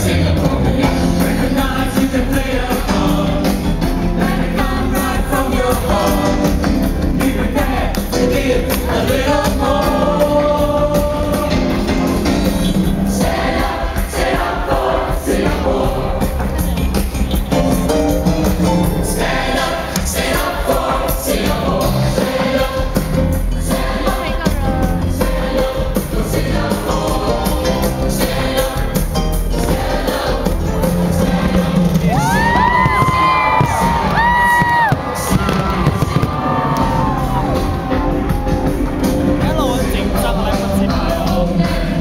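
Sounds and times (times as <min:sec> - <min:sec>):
large crowd singing: 0:00.0 - 0:42.0
loud music over sound system: 0:00.0 - 0:42.0
fireworks bangs: 0:32.8 - 0:37.0.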